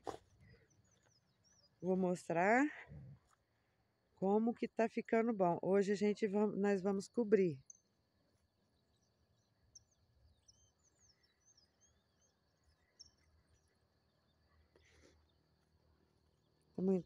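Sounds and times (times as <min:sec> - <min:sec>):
distant bird chirps: 0:00.0 - 0:04.4, 0:05.8 - 0:17.0.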